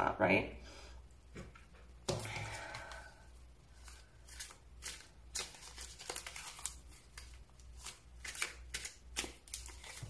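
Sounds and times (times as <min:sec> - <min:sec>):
low steady hum: 0:00.0 - 0:10.0
cards being shuffled: 0:03.8 - 0:10.0.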